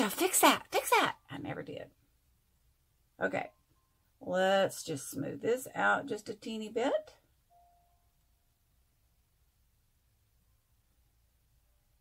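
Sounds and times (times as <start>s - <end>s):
faint ringing ding: 7.5s - 8.2s.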